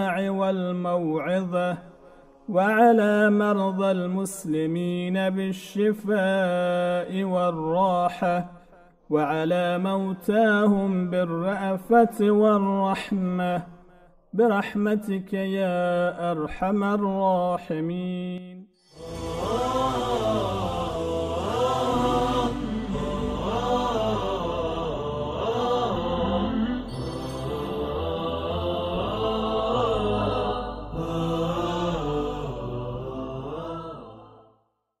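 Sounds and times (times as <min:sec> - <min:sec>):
chanted vocal melody: 0:00.0 - 0:13.7, 0:14.4 - 0:34.7
low sustained drone: 0:18.9 - 0:33.8.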